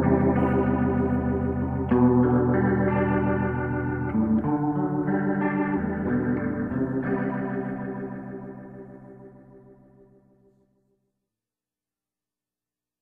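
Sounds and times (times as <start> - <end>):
rock band playing chords: 0.0 - 8.9.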